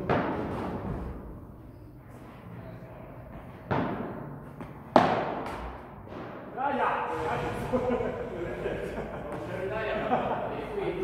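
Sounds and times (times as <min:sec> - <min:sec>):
rackets hitting ball: 0:00.0 - 0:01.2, 0:03.3 - 0:06.5.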